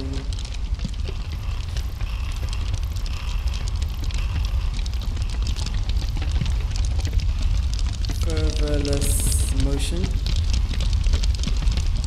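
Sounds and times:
dense crackle: 0.0s - 12.0s.

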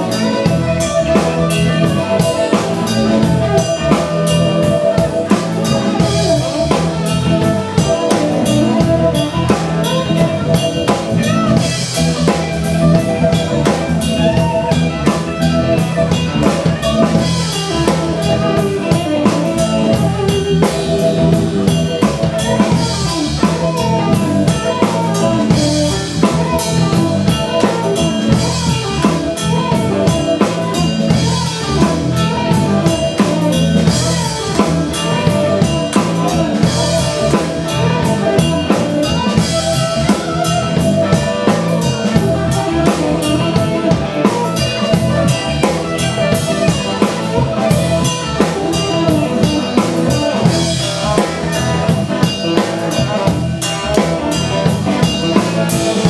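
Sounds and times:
drum kit steady beat: 0.0s - 56.0s
electric guitars: 0.0s - 56.0s
keyboards: 0.0s - 56.0s.

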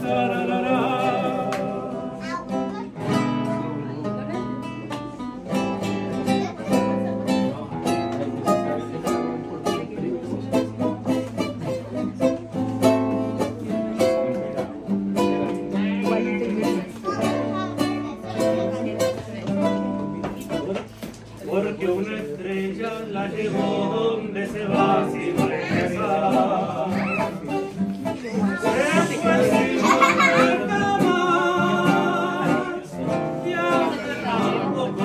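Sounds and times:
man singing: 0.0s - 2.4s, 13.6s - 17.6s, 20.3s - 35.0s
acoustic guitars playing: 0.0s - 35.0s.

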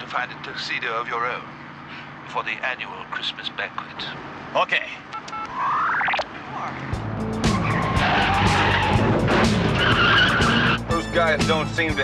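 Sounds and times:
action music with steady beat: 7.0s - 12.0s
car tires squealing: 7.4s - 11.0s.

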